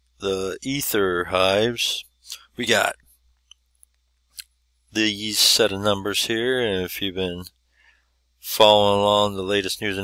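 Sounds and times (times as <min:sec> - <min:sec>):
man talking: 0:00.2 - 0:03.1, 0:04.4 - 0:07.6, 0:08.4 - 0:10.0.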